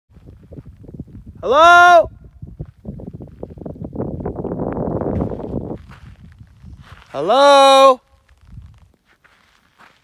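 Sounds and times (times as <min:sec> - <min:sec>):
footsteps crunching on gravel: 0:02.4 - 0:07.3, 0:08.0 - 0:10.0.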